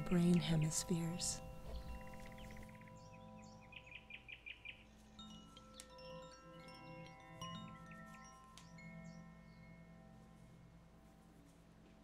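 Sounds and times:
tinkling wind chimes: 0.0s - 11.5s
ambient relaxation music: 0.0s - 12.0s.

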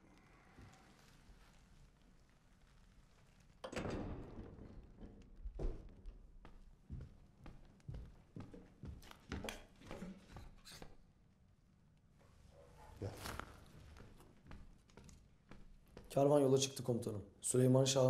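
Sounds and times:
footsteps crossing a room: 4.5s - 11.3s, 12.0s - 17.0s.

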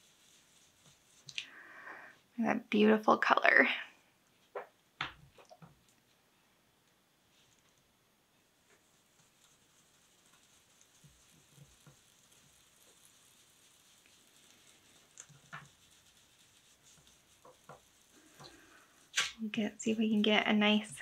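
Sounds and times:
foam dauber dabbing paper: 0.0s - 3.4s, 7.2s - 21.0s.

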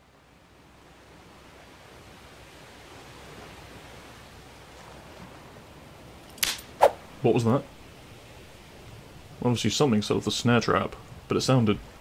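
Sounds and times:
faint forest ambience: 0.0s - 12.0s
snare trap snapping shut: 6.4s - 6.7s.

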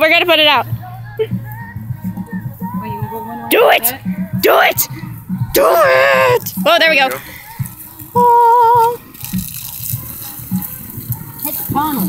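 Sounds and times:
water hissing on burning logs: 3.9s - 12.0s
wood crackling and popping: 4.7s - 12.0s.

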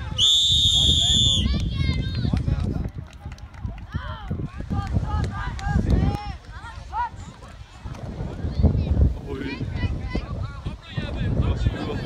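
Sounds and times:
referee whistle blast: 0.1s - 1.5s.

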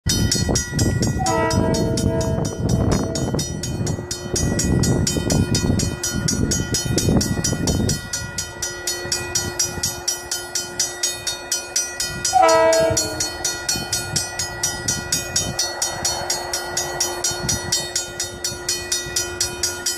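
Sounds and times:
crossing bell ringing: 0.0s - 19.9s
train air horn blast: 1.2s - 3.3s, 12.3s - 13.3s.

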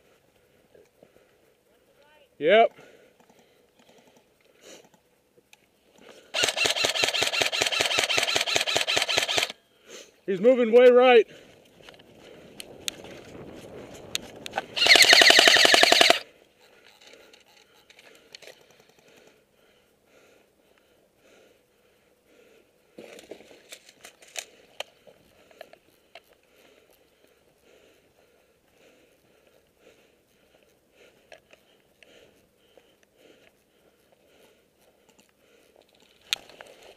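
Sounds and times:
faint scattered clicks: 0.3s - 9.6s, 11.6s - 13.4s, 14.0s - 19.5s, 23.1s - 36.9s
airsoft rifle automatic burst: 6.3s - 9.6s, 14.8s - 16.3s.

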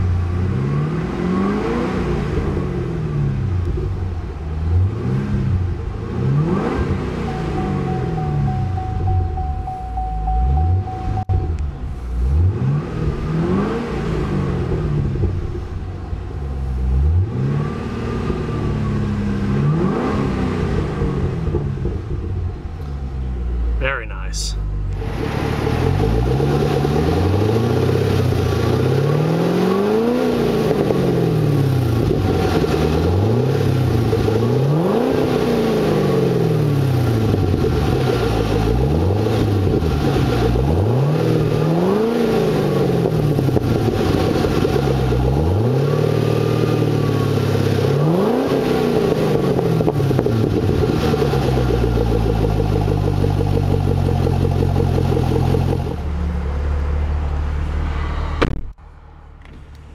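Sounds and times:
car engine idling and revving: 0.0s - 59.9s.

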